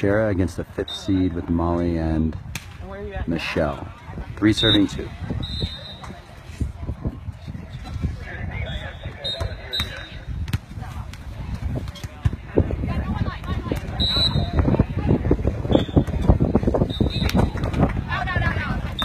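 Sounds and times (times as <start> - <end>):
wind buffeting microphone: 2.2 - 19.0.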